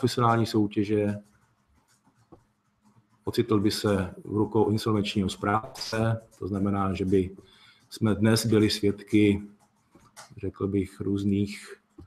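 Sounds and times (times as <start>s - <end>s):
man's voice: 0.0s - 1.2s, 3.3s - 9.4s, 10.4s - 11.7s.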